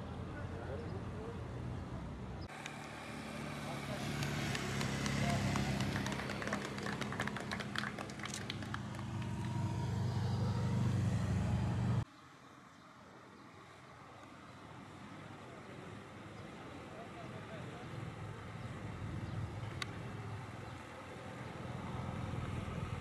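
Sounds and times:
motorcycle engines humming: 0:00.0 - 0:12.1, 0:14.1 - 0:23.0
hand clapping: 0:04.0 - 0:09.6.

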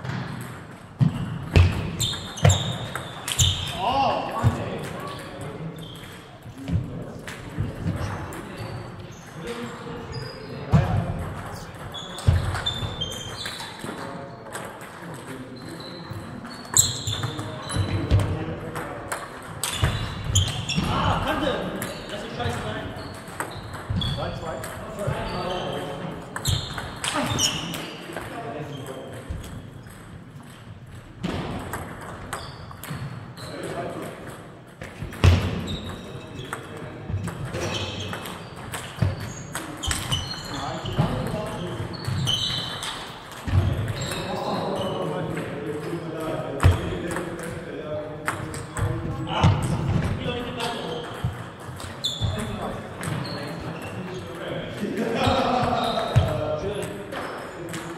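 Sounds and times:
table tennis balls clicking: 0:21.7 - 0:44.5.

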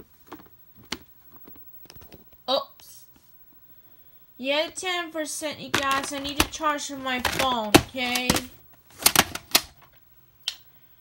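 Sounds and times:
plastic case clicking shut: 0:05.8 - 0:09.8.

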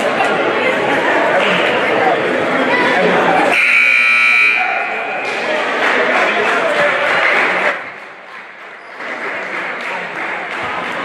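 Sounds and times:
crowd chatter: 0:00.0 - 0:11.0
high-pitched scoreboard buzzer: 0:03.5 - 0:04.7.

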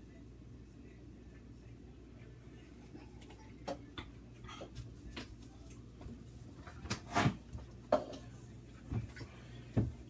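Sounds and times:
refrigerator hum: 0:00.0 - 0:10.0.

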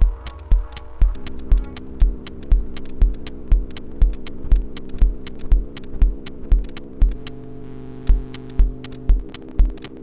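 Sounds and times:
deep thumping pulse: 0:00.0 - 0:09.9
glitch electronic music: 0:00.0 - 0:10.0
sharp high clicks: 0:00.0 - 0:10.0
steady humming drone: 0:00.0 - 0:10.0.

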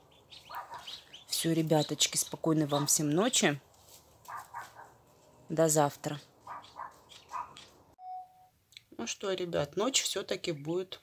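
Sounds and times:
short steady beep: 0:08.0 - 0:08.5.

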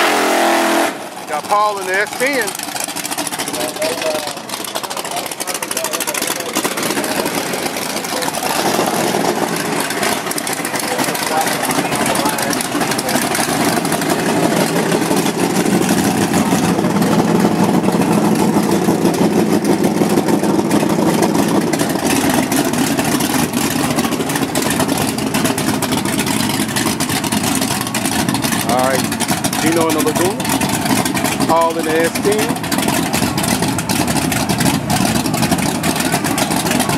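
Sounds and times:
car engine idling: 0:00.0 - 0:36.9
pickup truck engine running: 0:00.0 - 0:36.9.

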